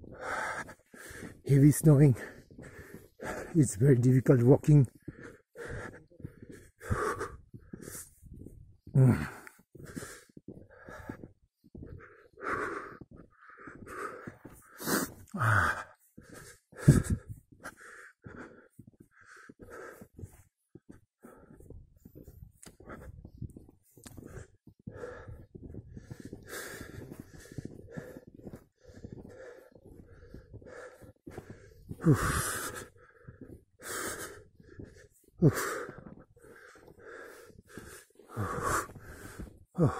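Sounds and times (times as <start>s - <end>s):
heavy labored breathing: 0.0s - 39.9s
man panting hard: 0.0s - 39.9s.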